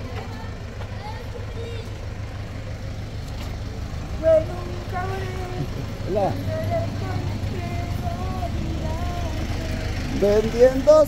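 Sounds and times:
faint voices: 0.0s - 2.9s, 3.5s - 11.0s
motor vehicle engine rumble: 0.0s - 11.0s.

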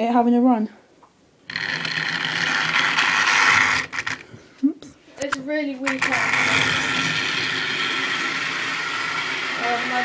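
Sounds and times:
model train motor whirring: 1.5s - 4.2s, 5.8s - 10.0s.

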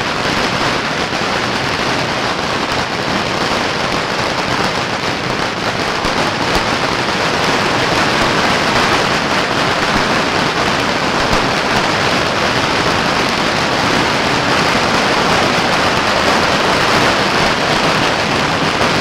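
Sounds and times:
firecracker strings crackling: 0.0s - 19.0s.

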